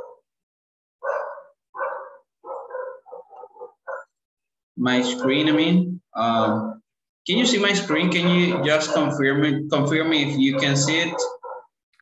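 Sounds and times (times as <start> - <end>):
dog barking: 0.0 - 0.3, 1.0 - 4.2, 5.0 - 5.7, 7.9 - 11.8.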